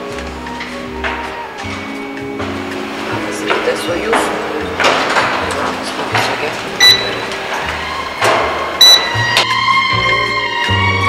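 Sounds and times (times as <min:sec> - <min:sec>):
background music: 0:00.0 - 0:11.0
barcode scanner beeping: 0:06.8 - 0:07.5, 0:08.8 - 0:09.4.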